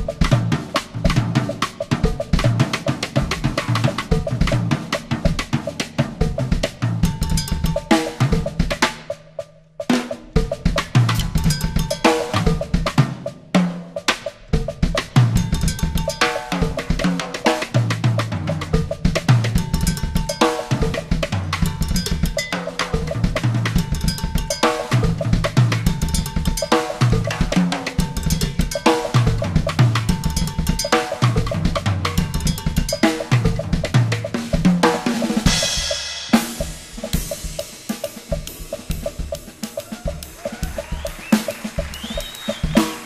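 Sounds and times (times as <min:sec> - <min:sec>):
drum kit playing: 0:00.0 - 0:43.0
cowbell accents: 0:07.1 - 0:08.4, 0:11.0 - 0:12.8, 0:15.3 - 0:17.8, 0:19.4 - 0:34.4, 0:35.0 - 0:43.0.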